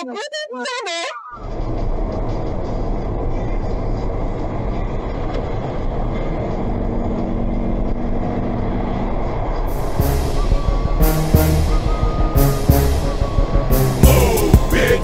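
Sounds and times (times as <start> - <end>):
tyre and engine rumble: 1.4 - 15.0.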